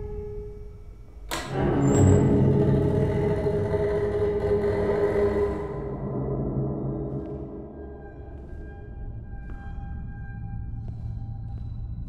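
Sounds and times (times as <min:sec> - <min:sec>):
deep rumbling drone: 0:00.2 - 0:12.0.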